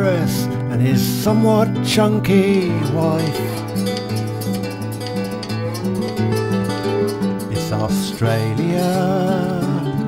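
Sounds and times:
plucked guitar folk accompaniment: 0.0s - 10.0s.

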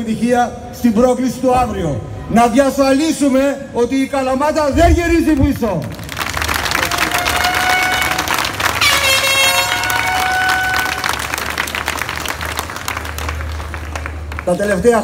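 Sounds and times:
crowd applauding: 5.4s - 15.0s
horn blasts: 6.9s - 11.7s.

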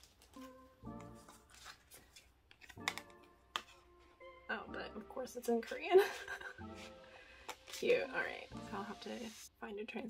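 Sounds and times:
paper cards rustling: 0.0s - 4.1s, 6.4s - 8.1s
soft instrumental music: 0.0s - 9.4s.

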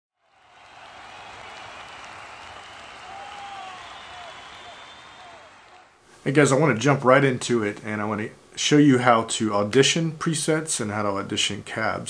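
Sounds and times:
crowd applause: 0.2s - 6.0s.

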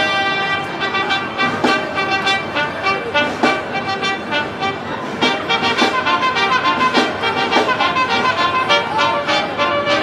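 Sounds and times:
brass chords: 0.0s - 10.0s
drum and percussion hits: 1.3s - 4.2s, 5.1s - 8.2s.

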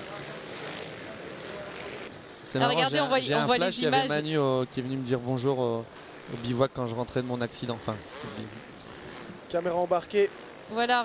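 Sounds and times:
motorcycle engines: 0.0s - 11.0s.

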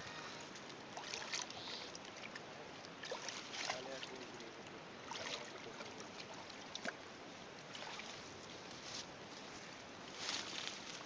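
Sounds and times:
water lapping: 0.0s - 7.0s, 7.7s - 8.4s
hands splashing in pond water: 0.6s - 4.4s, 5.0s - 7.0s, 7.7s - 8.3s.

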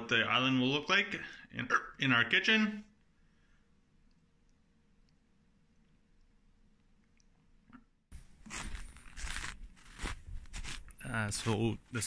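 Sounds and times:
footsteps crunching in snow: 8.2s - 11.8s.

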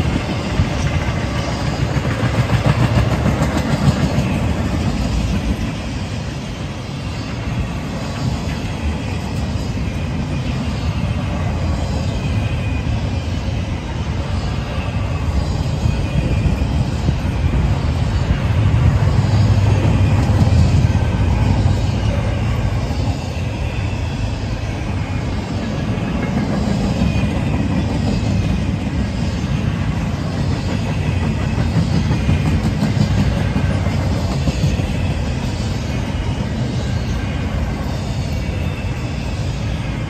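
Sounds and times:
freight train rolling past: 0.0s - 40.0s.

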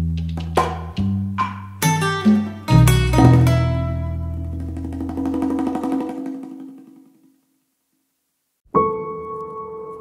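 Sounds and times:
background music with held chord: 1.0s - 4.6s.

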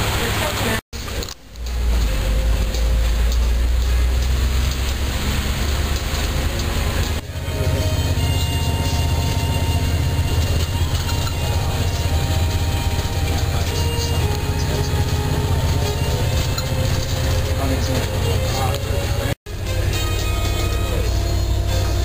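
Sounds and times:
bus engine and road rumble: 0.0s - 22.0s.

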